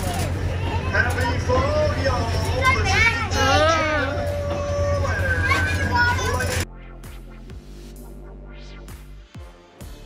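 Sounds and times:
children calling out: 0:02.4 - 0:06.6
electronic music with steady beat: 0:06.6 - 0:10.0.

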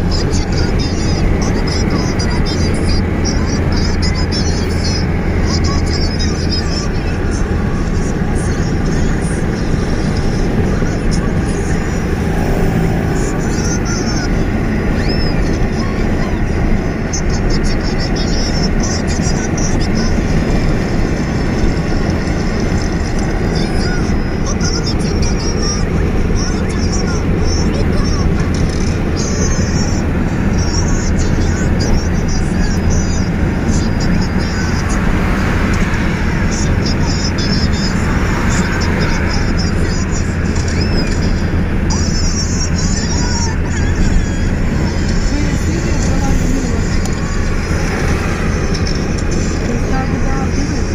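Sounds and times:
car engine drone: 0:00.0 - 0:50.9
road and wind noise: 0:00.0 - 0:50.9.

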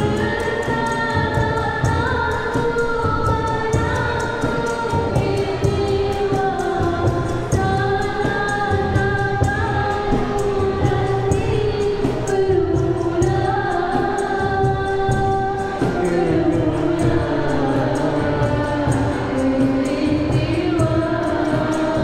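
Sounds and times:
harmonium: 0:00.0 - 0:22.0
tabla beat: 0:00.0 - 0:22.0
violin: 0:00.0 - 0:22.0
women singing held notes: 0:00.0 - 0:22.0.

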